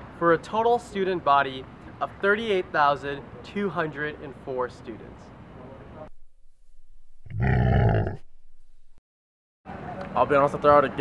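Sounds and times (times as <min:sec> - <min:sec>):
bear roar: 0:07.2 - 0:08.2.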